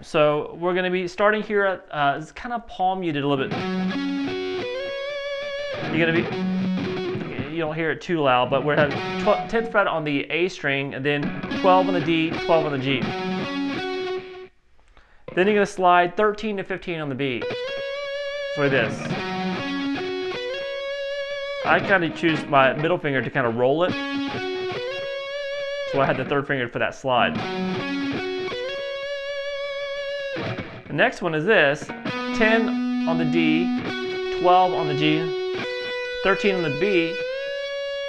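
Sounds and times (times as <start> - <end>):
electric guitar lead note: 3.4 - 7.7, 8.4 - 9.8, 11.2 - 14.5, 17.4 - 23.1, 23.9 - 26.4, 27.3 - 30.9, 31.8 - 38.0
electric guitar held note: 5.7 - 7.5, 8.4 - 9.7, 18.6 - 20.6, 21.6 - 22.8.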